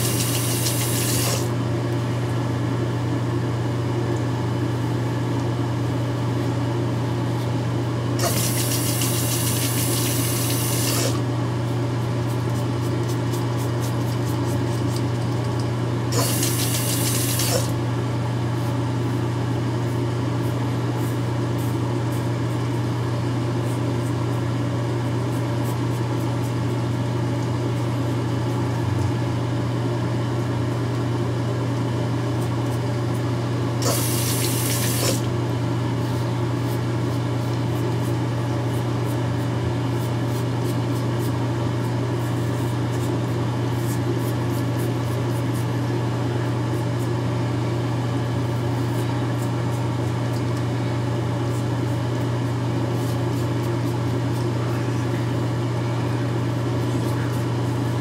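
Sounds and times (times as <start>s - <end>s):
tap running water: 0.0s - 1.4s, 8.2s - 11.1s, 16.2s - 17.7s, 33.8s - 35.2s
electric razor buzzing: 8.2s - 11.2s, 16.2s - 17.7s.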